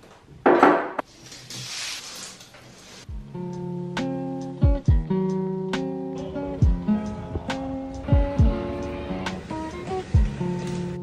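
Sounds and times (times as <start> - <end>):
strummed acoustic guitar music: 3.2 - 11.0.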